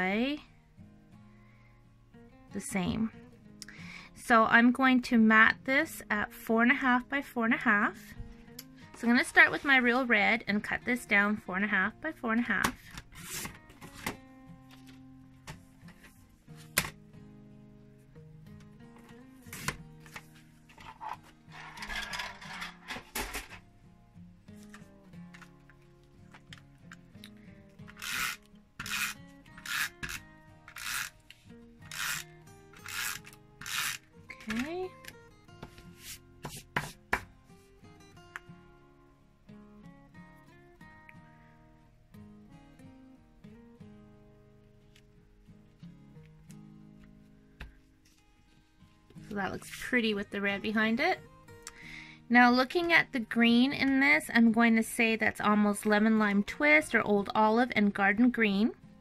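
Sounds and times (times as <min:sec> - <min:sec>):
background music: 0:00.0 - 0:59.0
rubbing strokes on card: 0:13.2 - 0:13.5, 0:35.7 - 0:37.1
paper trimmer blade scraping: 0:27.9 - 0:31.3, 0:31.9 - 0:34.1.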